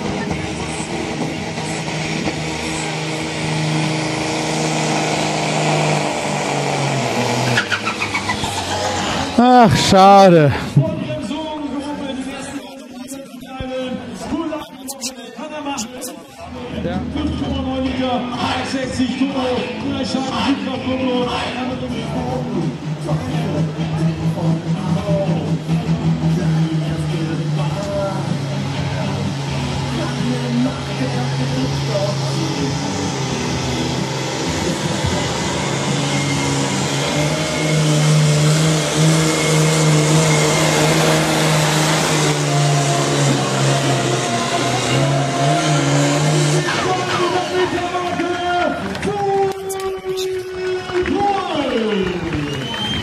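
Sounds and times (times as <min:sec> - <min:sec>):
diesel tractor engine under load: 0:00.0 - 0:14.5, 0:28.3 - 0:50.3.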